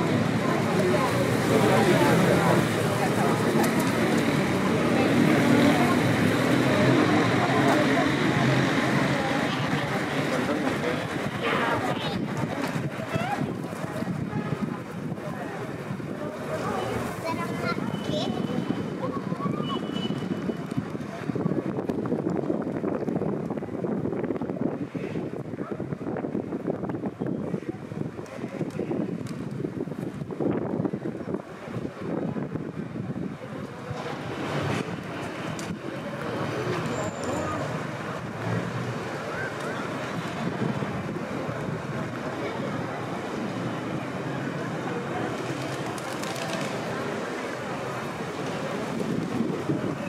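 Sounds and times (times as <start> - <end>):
street sound: 0.0 - 50.0
wind buffeting microphone: 9.6 - 36.5, 39.8 - 44.0, 45.1 - 50.0.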